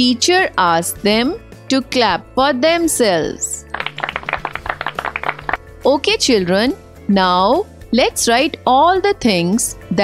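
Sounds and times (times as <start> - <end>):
soft background music: 0.0 - 10.0
children clapping: 3.7 - 5.6.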